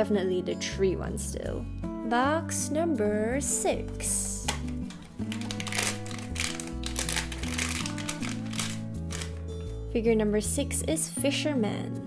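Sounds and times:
background music: 0.0 - 12.0
plastic bag crinkling: 4.6 - 9.5.

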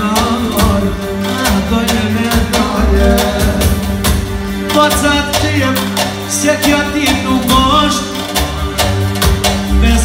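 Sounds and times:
man singing into a microphone: 0.0 - 3.9
plucked string instrument: 0.0 - 10.0
steady beat: 0.0 - 10.0.

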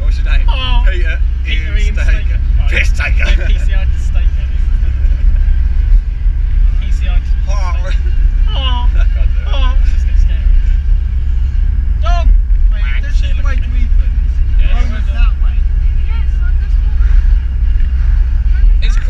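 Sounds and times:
car engine and road noise: 0.0 - 19.0
passengers talking: 0.0 - 19.0.

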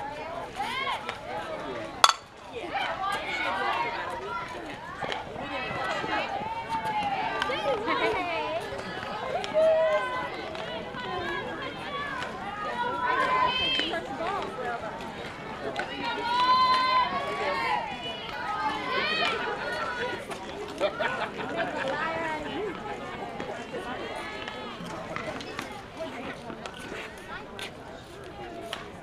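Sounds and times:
girls shouting and cheering: 15.8 - 20.3.

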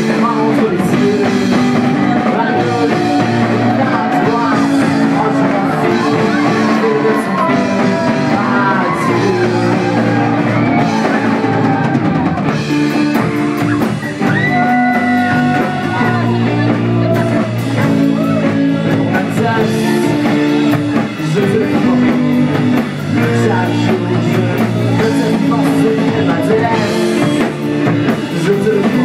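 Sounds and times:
person singing: 0.0 - 29.0
rock band playing live: 0.0 - 29.0.

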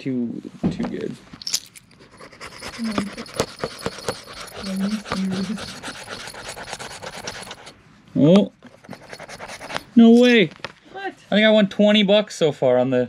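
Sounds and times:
scratch card being scraped: 2.1 - 7.8, 8.7 - 10.2.

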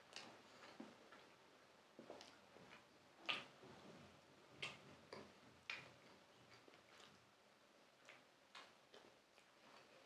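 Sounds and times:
faint chewing with mouth clicks: 0.0 - 10.0.

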